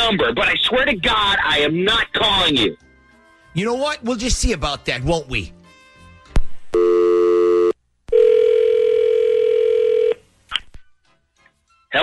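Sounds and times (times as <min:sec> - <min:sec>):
dialing tones: 0:06.8 - 0:10.2.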